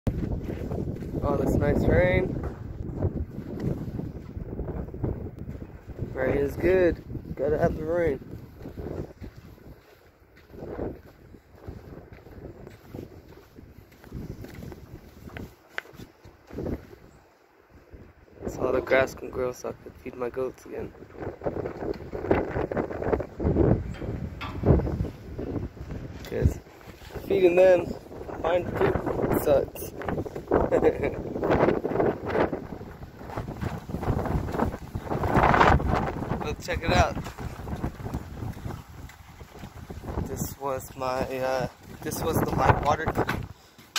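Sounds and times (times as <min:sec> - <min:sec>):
wind buffeting microphone: 0:00.1 - 0:43.9.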